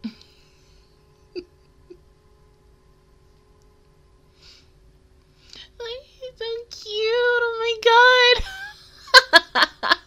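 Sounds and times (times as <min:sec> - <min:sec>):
woman's stifled laughter: 0:08.4 - 0:10.0.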